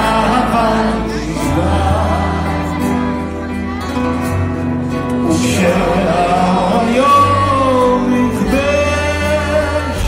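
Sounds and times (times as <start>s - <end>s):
rock band playing through pa: 0.0s - 10.0s
man singing long notes: 5.2s - 10.0s.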